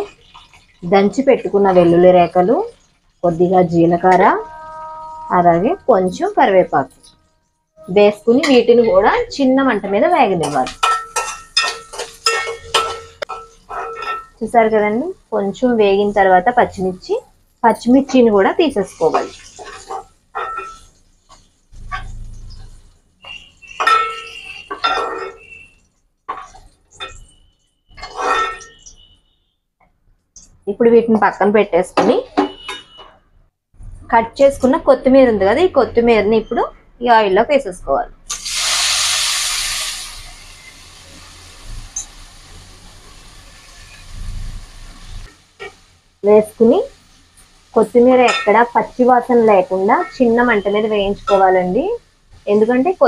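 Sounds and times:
leaves sizzling in hot oil: 0:00.0 - 0:04.4, 0:09.9 - 0:28.8, 0:38.3 - 0:53.0
metal ladle striking frying pan: 0:10.3 - 0:14.4, 0:19.1 - 0:22.5, 0:23.3 - 0:25.6, 0:32.0 - 0:33.1, 0:48.1 - 0:48.7.

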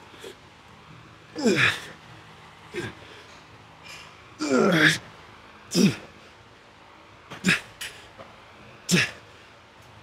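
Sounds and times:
man grunting with effort: 0:01.4 - 0:02.0, 0:04.4 - 0:05.0, 0:05.7 - 0:06.1, 0:07.4 - 0:07.7, 0:08.9 - 0:09.2.

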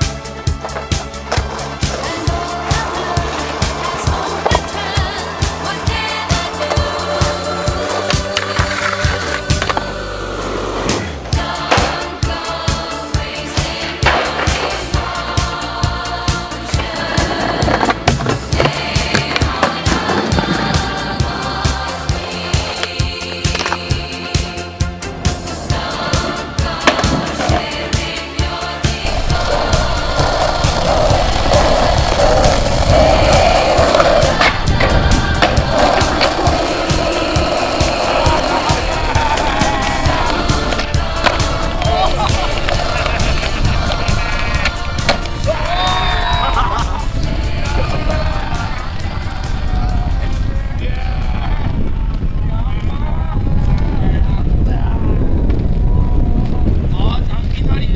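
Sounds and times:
skateboard scraping concrete: 0:00.0 - 0:12.3, 0:13.5 - 0:15.6, 0:16.6 - 0:24.5, 0:25.6 - 0:28.0, 0:28.9 - 0:50.6
skateboard rolling on pavement: 0:00.0 - 0:24.5, 0:25.2 - 0:28.2, 0:28.9 - 0:56.9.

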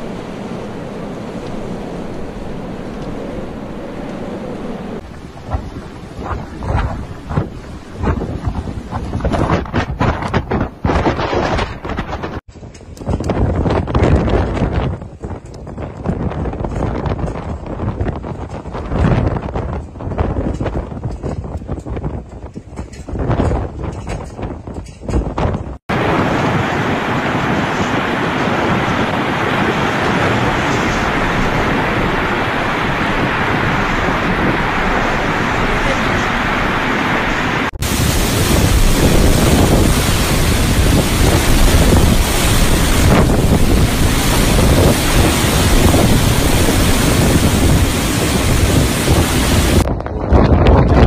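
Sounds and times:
heavy low rumble: 0:00.0 - 0:12.4, 0:25.9 - 0:51.0
blizzard wind blowing: 0:00.0 - 0:51.0
wind buffeting microphone: 0:00.0 - 0:51.0.

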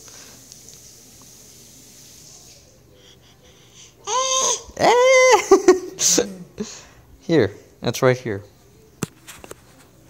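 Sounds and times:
infant babbling: 0:02.9 - 0:05.4.

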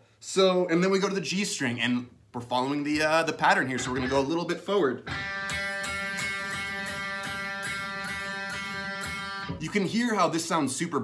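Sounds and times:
electric guitar note picked: 0:03.8 - 0:04.3, 0:05.0 - 0:09.7.

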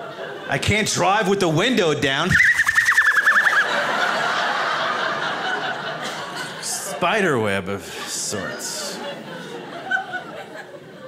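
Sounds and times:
studio audience laughing: 0:00.0 - 0:00.6, 0:03.3 - 0:07.2, 0:07.8 - 0:11.0
high wavering vocal squeal: 0:02.3 - 0:03.7.

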